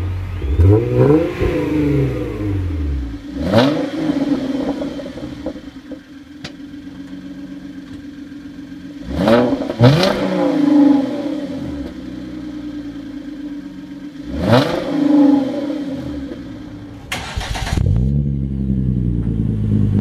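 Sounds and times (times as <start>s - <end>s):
car engine cranking and starting: 0.0s - 20.0s
car engine idling and revving: 0.0s - 20.0s.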